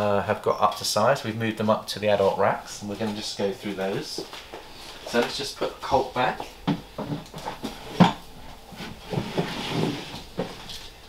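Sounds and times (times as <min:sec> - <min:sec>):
plastic tub knocking and scraping: 0:06.7 - 0:10.6.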